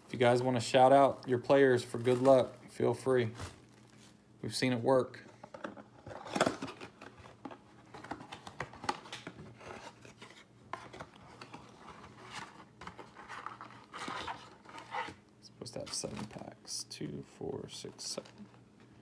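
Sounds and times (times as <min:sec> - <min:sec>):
rustling and crinkling of wrappers: 0:00.1 - 0:04.2, 0:17.8 - 0:19.0.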